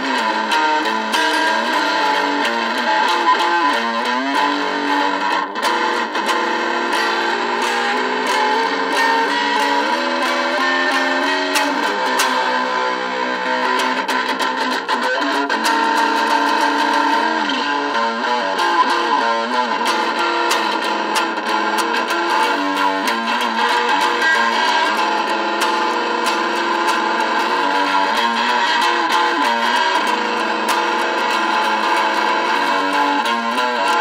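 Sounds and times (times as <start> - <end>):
electric guitar chord sliding: 0.0 - 34.0.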